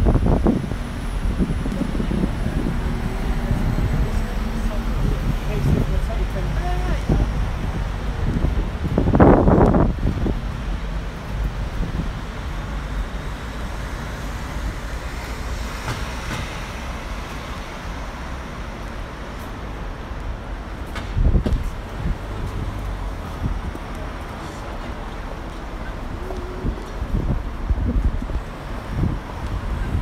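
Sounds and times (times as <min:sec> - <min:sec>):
bus passing close by: 0:00.0 - 0:30.0
low rumble of road traffic: 0:00.0 - 0:30.0.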